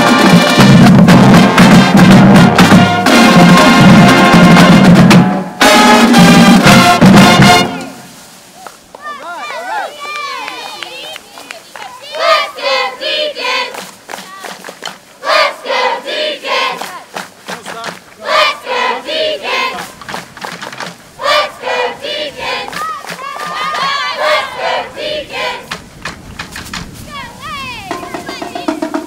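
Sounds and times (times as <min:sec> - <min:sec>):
crowd chanting a cheer: 0:09.0 - 0:14.5, 0:15.2 - 0:20.0, 0:21.1 - 0:25.8.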